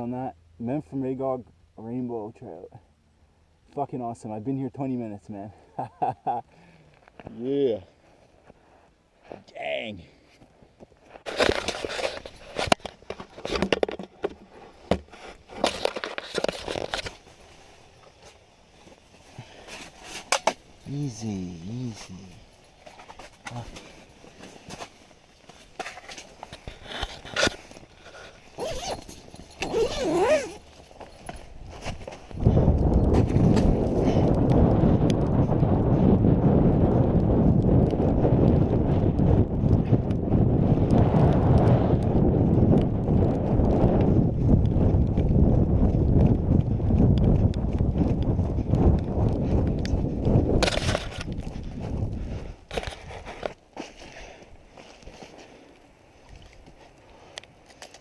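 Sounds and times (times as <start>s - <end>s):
footsteps crunching through snow: 29.7s - 34.0s
microphone rumble: 32.0s - 53.2s.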